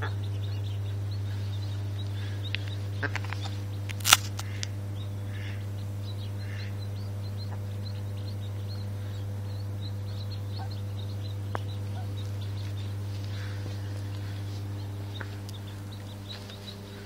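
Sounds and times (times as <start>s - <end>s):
ducklings peeping: 0.0s - 17.0s
steady low hum: 0.0s - 17.0s
sharp click: 3.9s - 4.7s.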